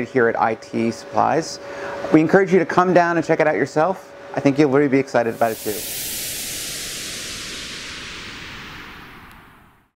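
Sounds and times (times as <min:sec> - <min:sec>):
faint tone sliding downward: 0:05.2 - 0:10.0
hissing whoosh: 0:05.2 - 0:10.0.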